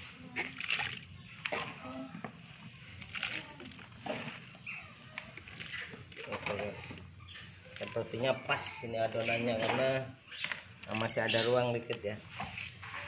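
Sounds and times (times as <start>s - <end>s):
water splashing and sloshing: 0.0s - 13.0s.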